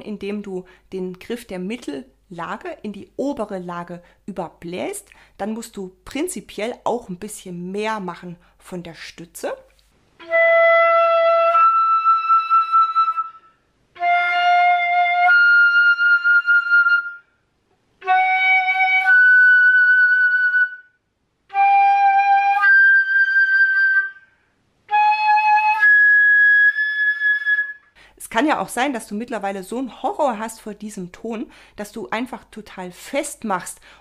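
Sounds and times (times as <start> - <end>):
flute playing octave slurs: 10.2 - 17.4, 18.0 - 28.0.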